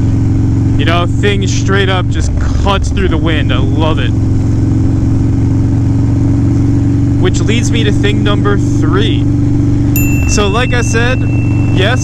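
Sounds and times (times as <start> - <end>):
motorcycle engine cruising: 0.0 - 12.0.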